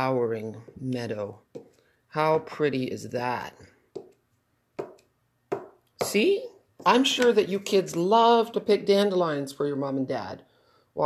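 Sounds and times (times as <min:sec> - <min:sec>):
stamp block knocking on table: 0:04.8 - 0:06.2.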